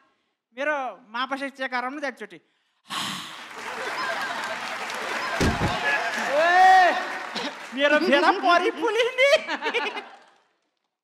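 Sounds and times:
audience laughter and applause: 3.3s - 10.6s.

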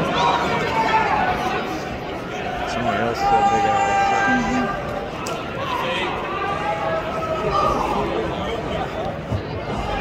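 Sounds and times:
crowd noise in a large hall: 0.0s - 10.0s
voices chattering nearby: 0.0s - 10.0s.

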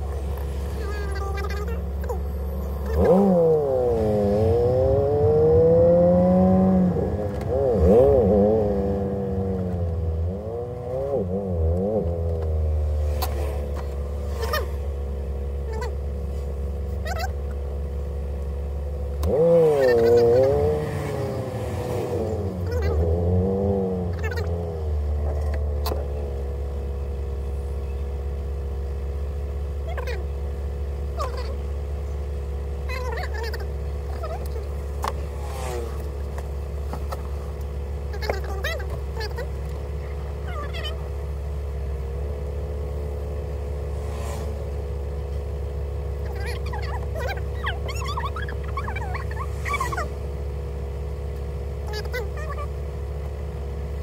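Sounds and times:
car engine droning at low revs: 0.0s - 54.0s.

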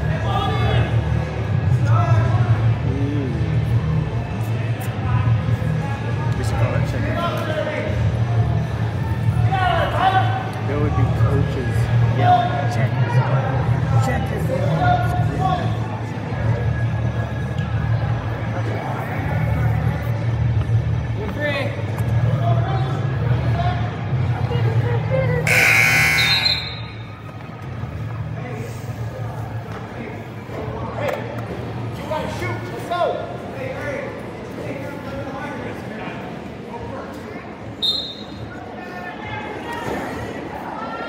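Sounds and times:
people calling out: 25.4s - 27.1s
scoreboard buzzer: 25.5s - 26.9s.

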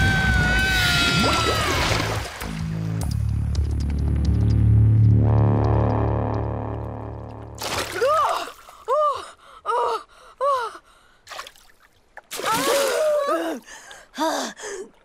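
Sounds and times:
low musical drone: 2.6s - 7.6s.

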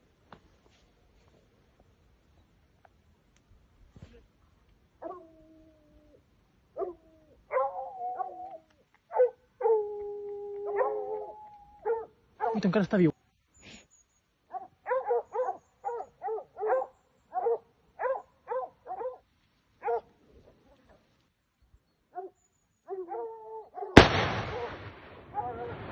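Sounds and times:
dogs barking: 6.8s - 8.5s, 9.1s - 9.9s, 10.6s - 12.7s, 14.5s - 19.2s, 19.8s - 20.1s
gunshot with echo: 24.0s - 25.9s.

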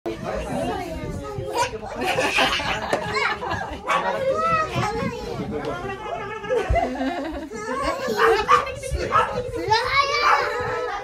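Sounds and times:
children and adults talking: 0.1s - 11.0s.

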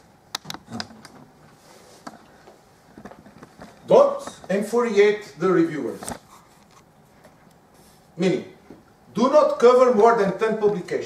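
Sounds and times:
man speaking loudly: 3.9s - 6.0s, 8.2s - 11.0s.

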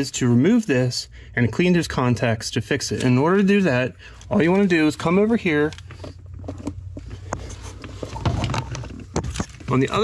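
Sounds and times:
low steady hum: 0.0s - 10.0s
clicks and rustles of handling: 4.1s - 10.0s.

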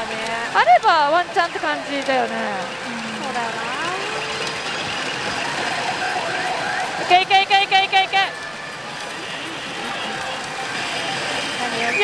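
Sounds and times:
pachinko machines din: 0.0s - 12.0s.

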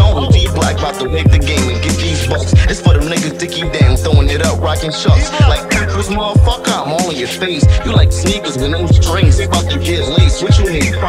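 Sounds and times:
hip hop beat with bass: 0.0s - 11.0s
person rapping: 0.0s - 11.0s
kick drum hits: 3.8s - 4.3s, 5.1s - 5.6s, 6.4s - 6.6s.

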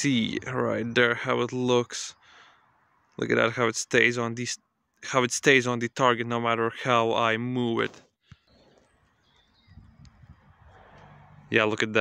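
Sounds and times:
low rumbling and rustling: 9.6s - 12.0s.

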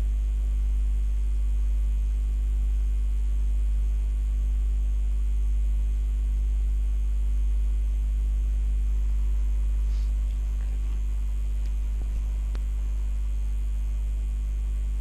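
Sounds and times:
electrical mains hum: 0.0s - 15.0s.

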